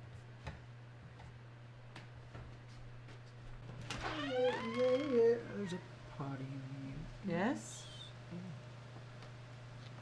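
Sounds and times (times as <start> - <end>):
steady low hum: 0.0 - 10.0
drawn-out wavering vocal call: 4.3 - 5.9.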